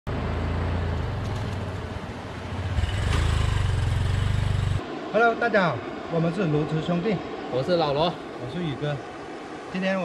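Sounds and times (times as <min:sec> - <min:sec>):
small motorcycle engine running: 0:02.5 - 0:04.8.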